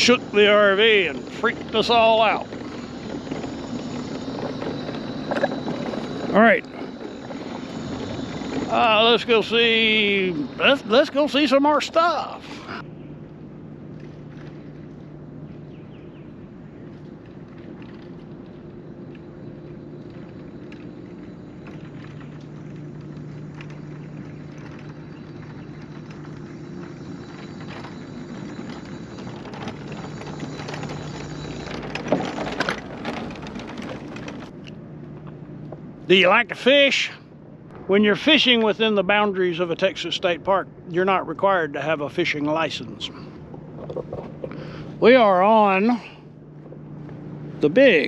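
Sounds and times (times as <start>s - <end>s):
mobility scooter motor humming: 0.0s - 35.9s
wooden bridge boards rattling: 23.0s - 34.6s.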